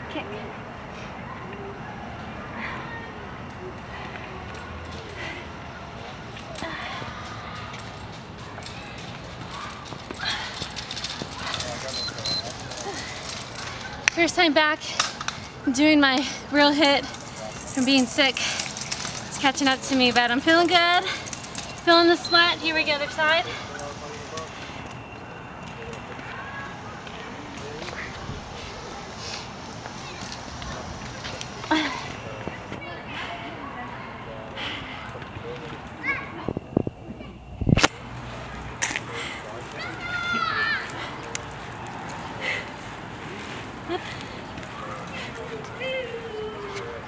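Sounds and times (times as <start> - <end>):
faint distant voices: 0.0 - 47.0.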